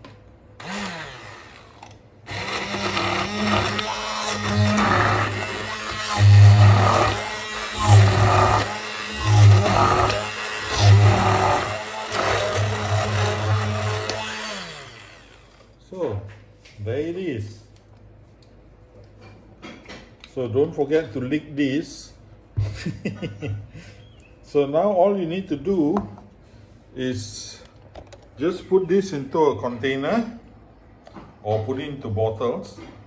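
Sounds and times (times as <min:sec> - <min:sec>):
immersion blender motor hum: 0:00.6 - 0:15.7.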